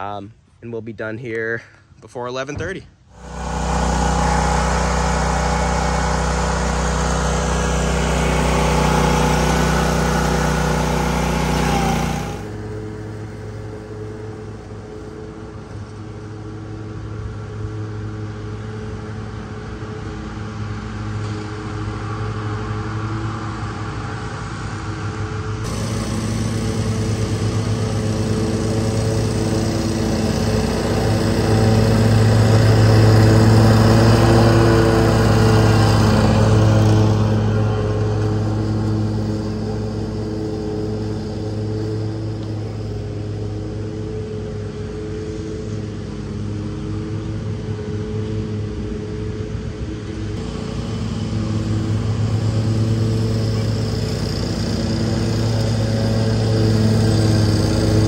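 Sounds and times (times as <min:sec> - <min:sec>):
mower engine running: 0:03.0 - 0:23.5, 0:25.6 - 0:49.1, 0:49.7 - 0:58.0.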